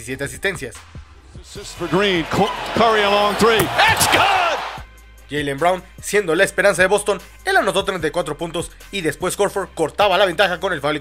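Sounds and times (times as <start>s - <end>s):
shouting voices: 1.6s - 4.8s
arena crowd noise: 1.6s - 4.9s
basketball bouncing on court: 3.5s - 4.5s.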